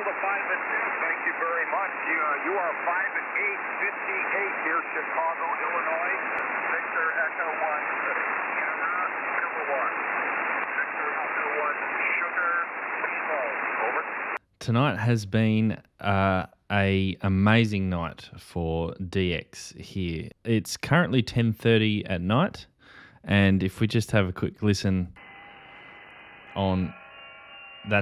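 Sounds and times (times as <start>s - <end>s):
radio static hiss: 0.0s - 14.4s, 25.2s - 28.0s
weak distant radio voices: 0.0s - 14.4s.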